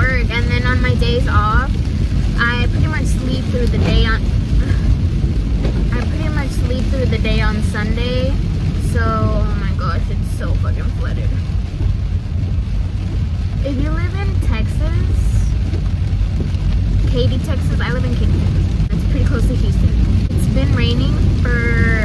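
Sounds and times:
woman speaking: 0:00.0 - 0:01.8, 0:02.4 - 0:04.9, 0:05.9 - 0:11.4, 0:13.6 - 0:15.6, 0:17.0 - 0:22.0
car road and engine rumble: 0:00.0 - 0:22.0.

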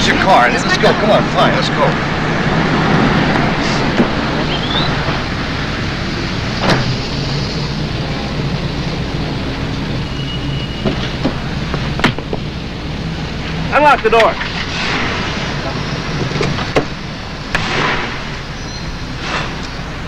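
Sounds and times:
road traffic hum: 0:00.0 - 0:20.0
knocks and clicks at car door: 0:12.0 - 0:12.4.

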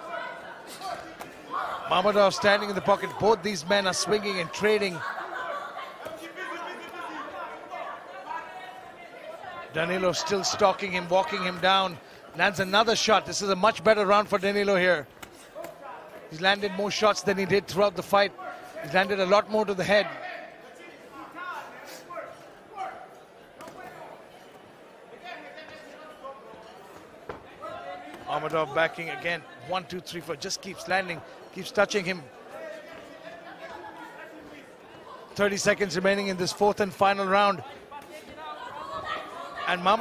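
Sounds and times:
people shouting: 0:00.0 - 0:08.5
crowd voices talking: 0:00.0 - 0:40.0.

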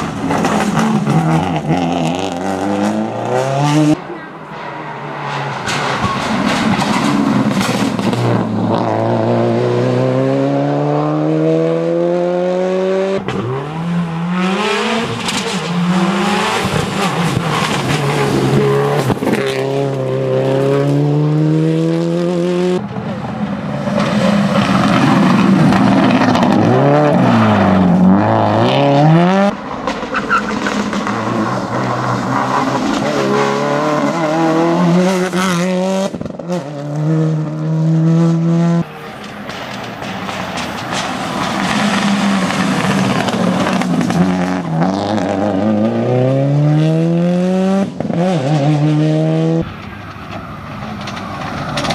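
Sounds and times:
rally car engine at full throttle: 0:00.0 - 0:51.9.

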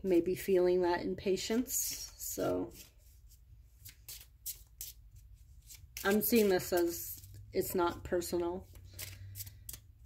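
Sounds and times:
cards shuffling: 0:01.5 - 0:07.4, 0:08.6 - 0:10.0.

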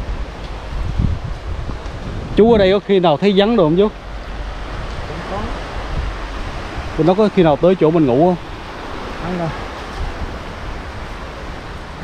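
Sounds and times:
sea surf rushing on beach: 0:00.0 - 0:12.0
wind rumbling on microphone: 0:00.0 - 0:12.0.

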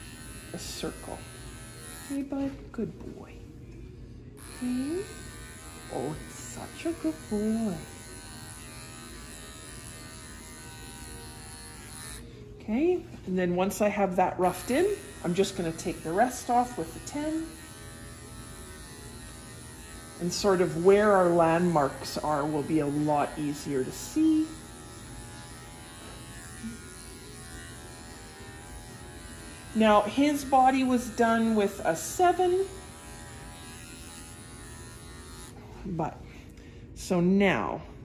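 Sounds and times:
electric clippers buzzing: 0:00.0 - 0:02.6, 0:04.3 - 0:12.6, 0:13.9 - 0:36.2.

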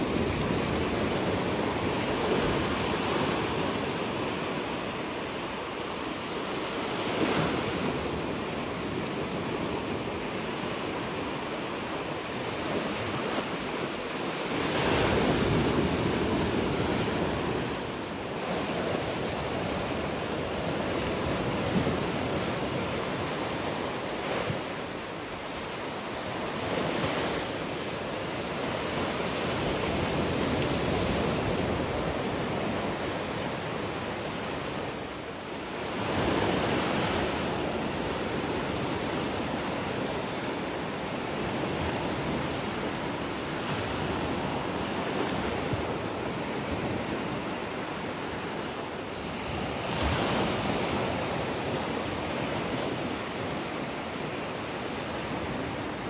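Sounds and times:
small waves breaking: 0:00.0 - 0:56.0.

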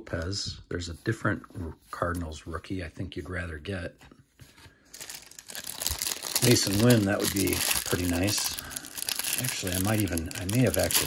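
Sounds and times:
cellophane wrapper crinkling: 0:04.9 - 0:11.0.

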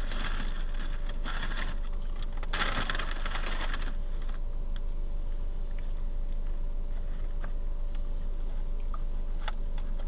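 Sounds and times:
rapid crackling clicks: 0:00.0 - 0:04.9.

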